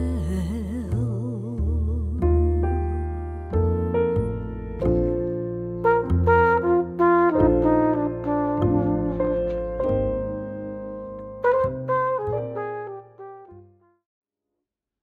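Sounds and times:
double bass: 0.0 - 13.8
piano: 0.0 - 14.1
brass horn melody: 5.8 - 14.0.

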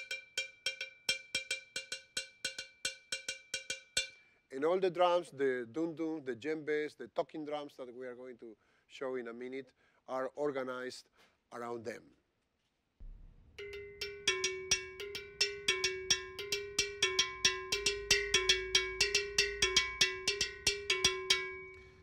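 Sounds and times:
metal bell struck with stick: 13.6 - 22.0.

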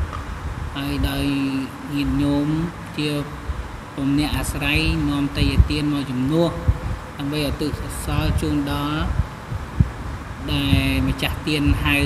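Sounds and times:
man speaking: 0.8 - 3.4, 4.0 - 9.2, 10.4 - 12.0
low irregular thumps and rumble: 6.5 - 7.2, 8.0 - 12.0.

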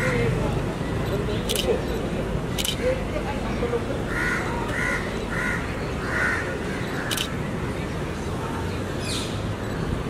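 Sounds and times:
crow cawing: 4.1 - 6.5.

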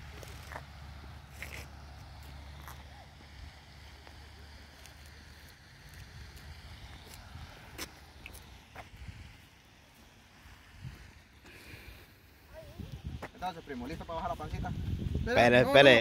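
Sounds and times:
wind rumble on microphone: 8.7 - 9.4, 12.5 - 16.0.

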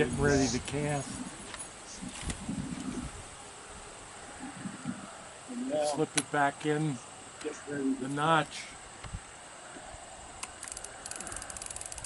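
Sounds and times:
fishing reel ticking: 10.6 - 12.0.

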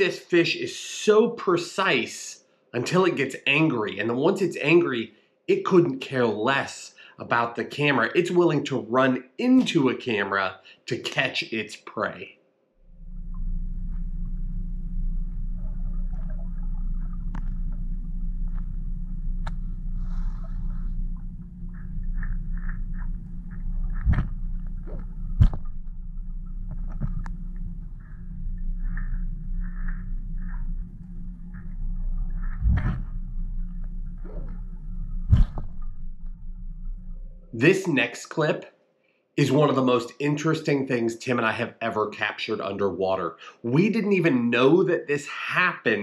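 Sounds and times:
low underwater rumble: 12.9 - 37.6
fish knocking into camera: 23.9 - 25.9, 32.5 - 33.1.

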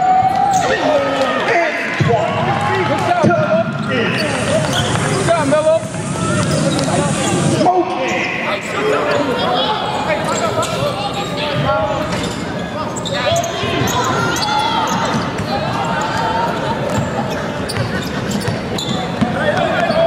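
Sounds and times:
voices of players and spectators: 0.0 - 20.0.

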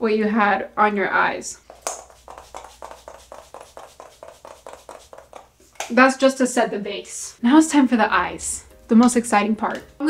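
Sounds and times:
spray bottle pumping: 1.6 - 5.9.

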